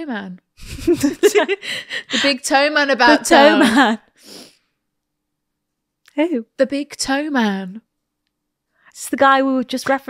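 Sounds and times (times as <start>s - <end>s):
breathy puff of air: 4.2s - 4.6s.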